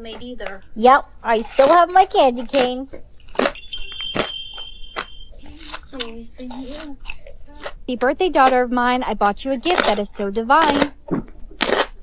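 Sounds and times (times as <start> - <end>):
bites into crunchy food: 1.4 - 7.8, 10.6 - 12.0
high electronic beep: 3.3 - 5.7.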